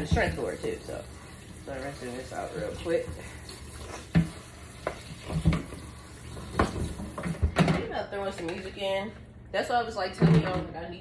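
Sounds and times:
running kitchen tap: 0:00.0 - 0:07.7
knocks against sink: 0:06.5 - 0:07.9.

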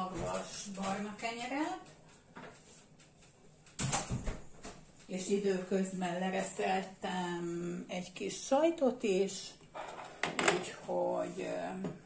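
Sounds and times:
knock and scrape: 0:09.8 - 0:10.9.

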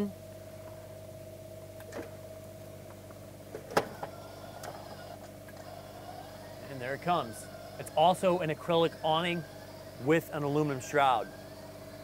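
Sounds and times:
awning motor running: 0:03.7 - 0:12.0.

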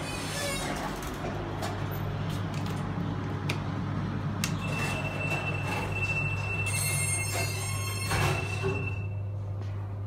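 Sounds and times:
elevator high-pitched whine: 0:04.0 - 0:09.6.

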